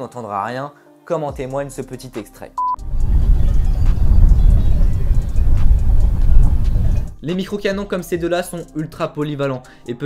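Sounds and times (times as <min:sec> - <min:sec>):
wind buffeting microphone: 0:02.8 - 0:07.2.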